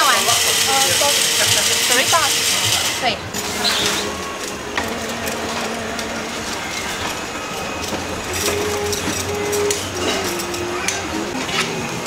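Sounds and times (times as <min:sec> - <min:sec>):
chatter of voices: 0:00.0 - 0:07.7.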